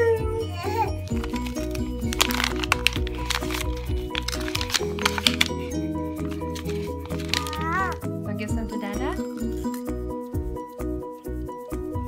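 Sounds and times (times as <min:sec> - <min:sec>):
background music: 0:00.0 - 0:12.0
paper crinkling: 0:01.0 - 0:08.1.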